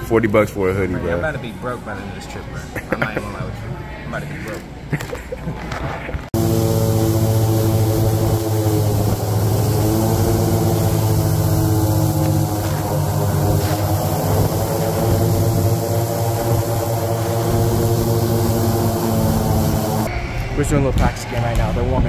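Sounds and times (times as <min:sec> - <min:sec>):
airboat engine and propeller drone: 0:06.4 - 0:20.1.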